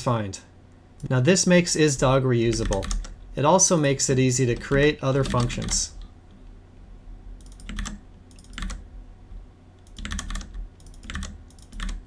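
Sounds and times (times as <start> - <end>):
computer keyboard typing: 2.5 - 3.2, 4.5 - 6.0, 7.4 - 8.8, 9.8 - 12.0.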